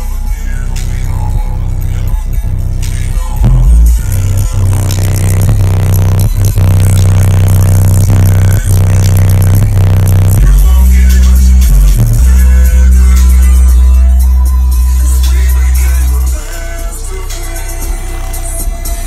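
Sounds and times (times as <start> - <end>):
bass-heavy electronic music: 0.0 - 19.0.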